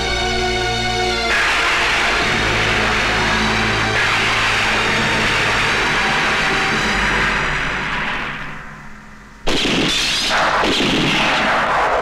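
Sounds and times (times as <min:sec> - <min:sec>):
echoing rush of noise: 0:01.2 - 0:12.0
pistol shot with echo: 0:09.4 - 0:12.0.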